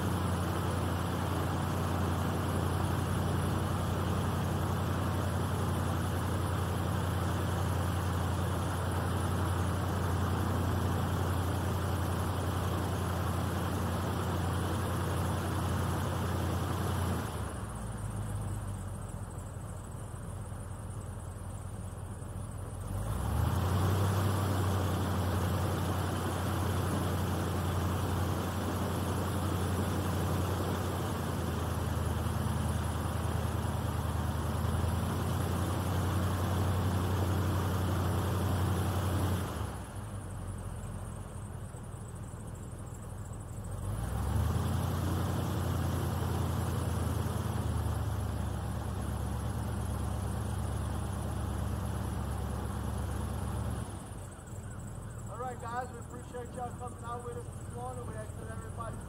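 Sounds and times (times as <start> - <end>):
airboat engine and propeller: 0.0 - 59.0.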